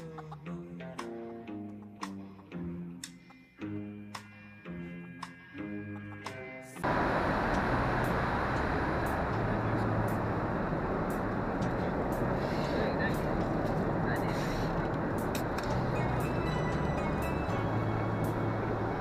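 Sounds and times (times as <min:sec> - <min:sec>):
airplane cabin engine rush: 0:06.8 - 0:19.0
passengers' voices: 0:11.7 - 0:15.0.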